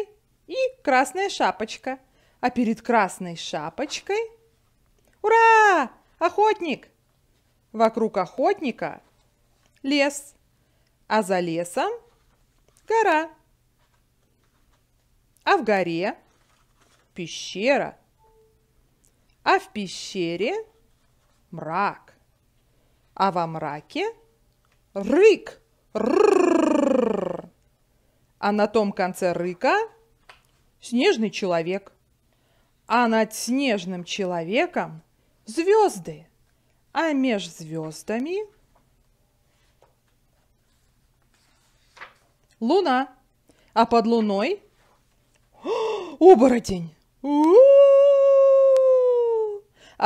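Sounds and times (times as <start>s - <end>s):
woman growling rolled trill: 26.0s - 27.5s
woman imitating wolf howl: 26.0s - 27.5s, 47.2s - 49.7s.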